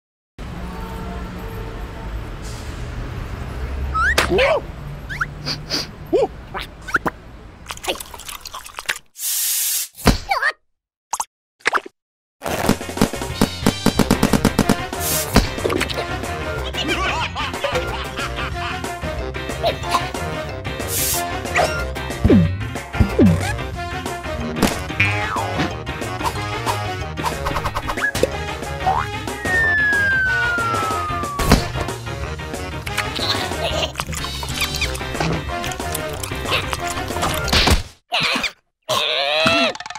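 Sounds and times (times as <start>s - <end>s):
cartoon falling whistle: 4.0s - 4.3s, 29.3s - 31.7s
gliding squeaky sound: 5.1s - 5.4s
cartoon music: 24.9s - 31.9s, 32.9s - 37.4s
thump of landing: 31.4s - 31.9s.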